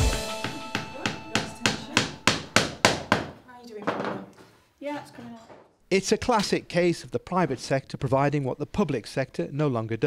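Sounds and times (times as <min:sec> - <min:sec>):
hammer tapping: 0:00.2 - 0:03.4.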